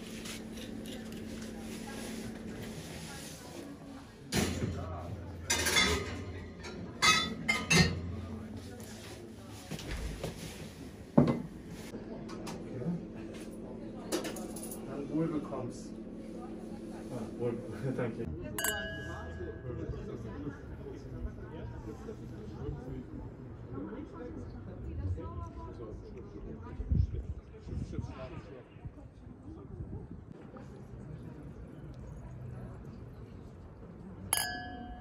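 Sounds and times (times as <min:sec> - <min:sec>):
wine glasses and tableware clinking: 0:05.4 - 0:08.2, 0:18.5 - 0:19.9, 0:34.4 - 0:35.0.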